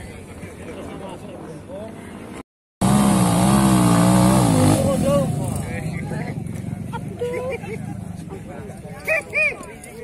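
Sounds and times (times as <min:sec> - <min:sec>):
motorcycle engine revving: 0:02.8 - 0:07.0.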